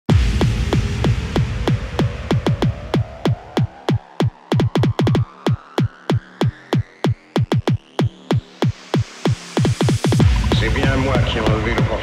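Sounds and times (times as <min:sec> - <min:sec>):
fast kick drum beat: 0:00.1 - 0:12.0.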